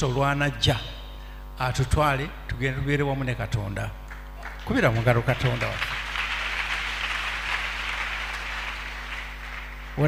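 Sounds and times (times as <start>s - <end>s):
low mains hum: 0.0s - 10.0s
congregation applauding: 4.1s - 10.0s.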